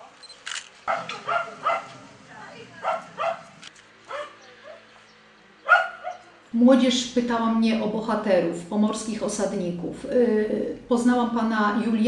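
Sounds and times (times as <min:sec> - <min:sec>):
camera shutter click: 0:00.2 - 0:00.8
small dog yapping: 0:00.9 - 0:02.0, 0:02.8 - 0:03.5, 0:04.1 - 0:04.8.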